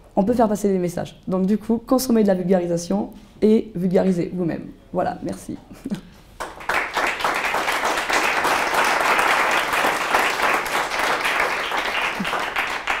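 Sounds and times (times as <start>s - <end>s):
audience applauding: 6.4s - 13.0s.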